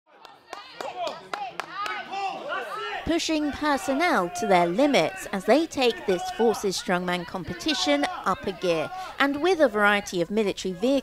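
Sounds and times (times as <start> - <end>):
hands clapping in rhythm: 0.2 - 2.0
voices shouting encouragement: 0.3 - 11.0.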